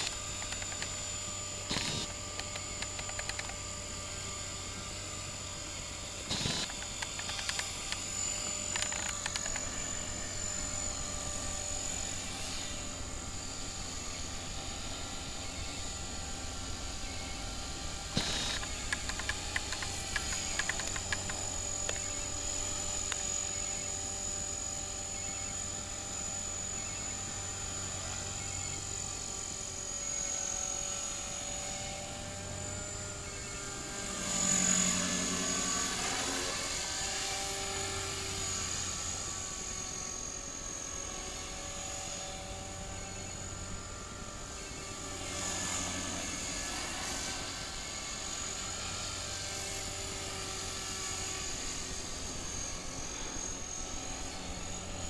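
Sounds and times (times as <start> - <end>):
model helicopter rotor whine: 0.0 - 55.0.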